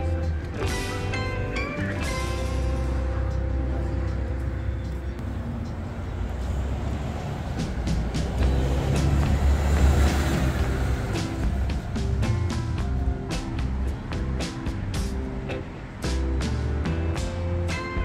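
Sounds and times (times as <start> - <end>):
background music: 0.0 - 18.0
road vehicle passing: 0.0 - 18.0.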